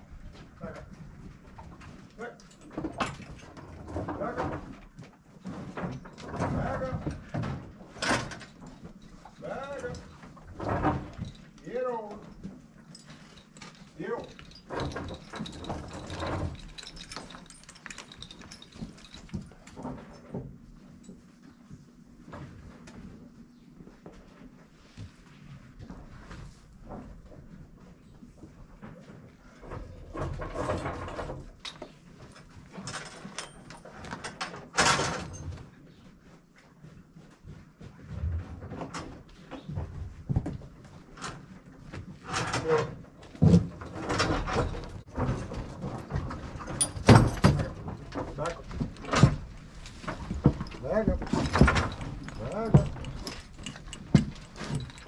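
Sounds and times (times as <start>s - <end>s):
horses knocking and scuffing in barn: 0.0s - 55.0s.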